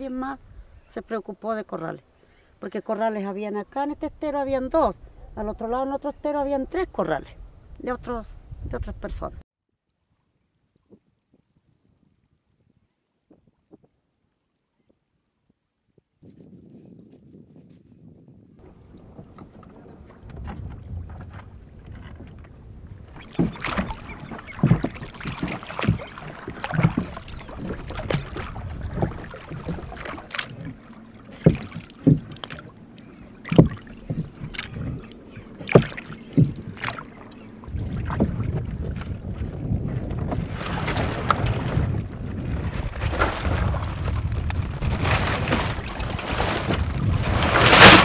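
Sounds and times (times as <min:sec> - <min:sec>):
wind rumble on microphone: 0:00.0 - 0:01.0, 0:03.7 - 0:09.4, 0:10.8 - 0:14.0, 0:14.8 - 0:48.0
water sloshing: 0:18.6 - 0:48.0
wooden oars knocking on boat: 0:18.6 - 0:48.0.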